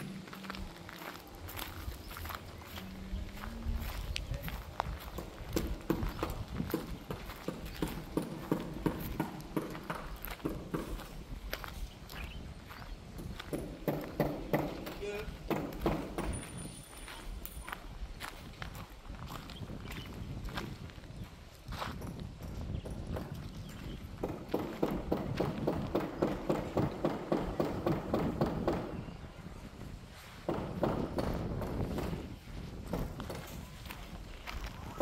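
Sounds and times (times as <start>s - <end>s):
footsteps on gravel: 0.0s - 27.1s, 29.2s - 35.0s.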